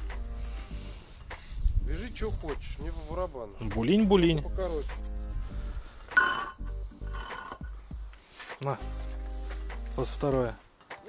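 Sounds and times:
background music with sustained chords: 0.0s - 2.1s, 4.0s - 11.0s
metal rigging hardware clinking: 6.2s - 7.8s.

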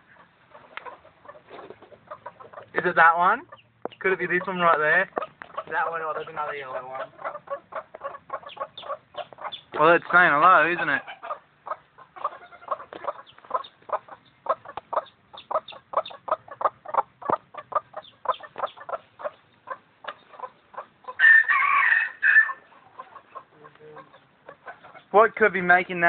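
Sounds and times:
drawn-out chicken call: 0.0s - 25.1s
chicken clucking: 0.0s - 26.0s.

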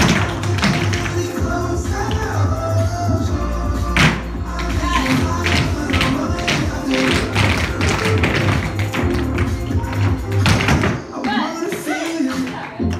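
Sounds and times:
recorded song with bass line: 0.0s - 12.9s.

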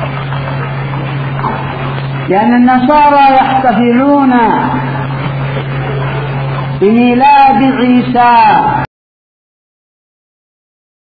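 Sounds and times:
constant low hum: 0.0s - 8.9s.

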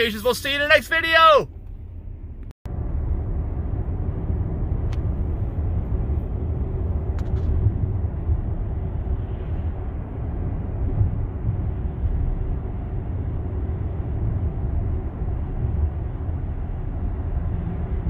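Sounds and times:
wind noise in car cabin: 0.0s - 18.0s.

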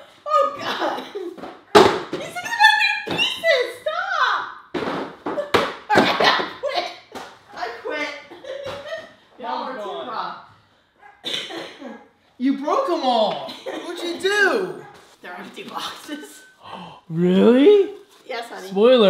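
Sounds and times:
people talking: 12.4s - 16.5s.

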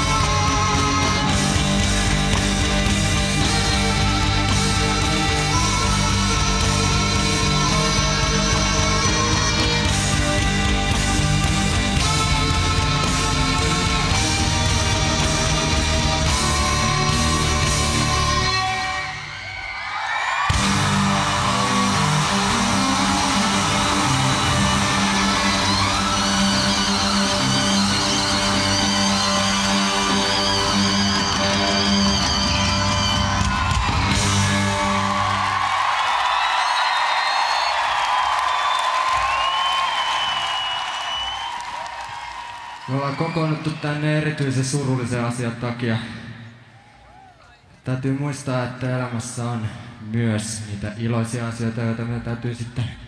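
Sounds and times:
heavy metal on distorted cellos: 0.0s - 19.2s, 20.5s - 35.4s.

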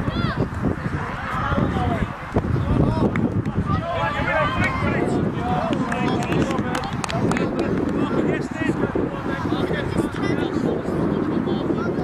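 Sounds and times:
children and adults shouting: 0.0s - 2.1s, 2.9s - 6.2s
wind rumbling on microphone: 0.0s - 12.0s.

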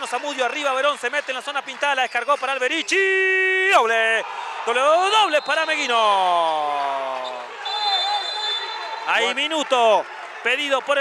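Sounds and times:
gym crowd noise: 0.0s - 11.0s
high-pitched whistle: 7.2s - 9.1s.

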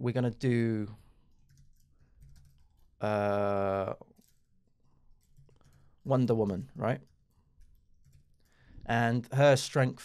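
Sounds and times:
faint keyboard typing: 1.0s - 8.7s.

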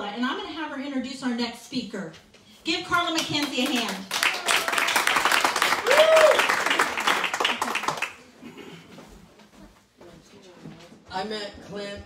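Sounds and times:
people clapping: 3.0s - 8.3s.

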